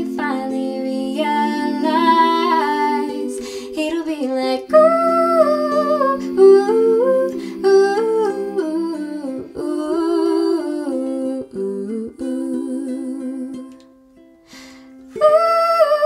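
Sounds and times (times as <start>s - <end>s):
ukulele chords: 0.0s - 16.0s.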